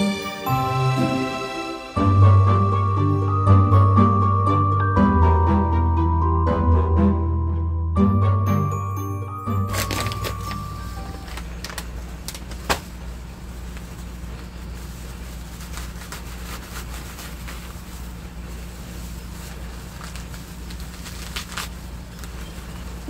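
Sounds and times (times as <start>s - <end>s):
dry moss rustling and crackling: 11.3s - 23.0s.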